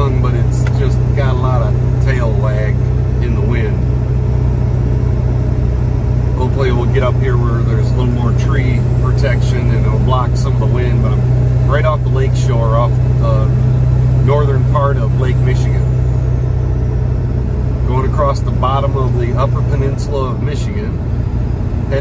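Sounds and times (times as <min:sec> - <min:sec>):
man talking: 0:00.0 - 0:03.9, 0:06.4 - 0:15.9, 0:17.8 - 0:21.0
engine and road noise drone: 0:00.0 - 0:22.0.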